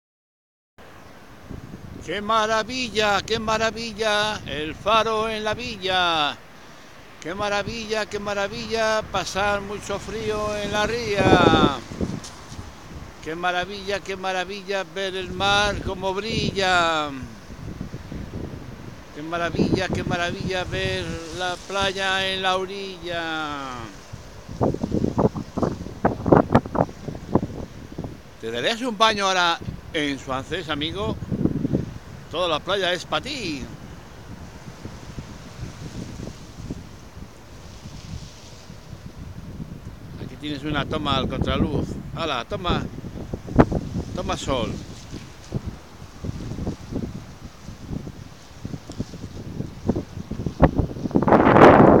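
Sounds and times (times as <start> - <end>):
wind buffeting microphone: 1.1 - 6.3, 7.2 - 28.5, 29.5 - 52.0.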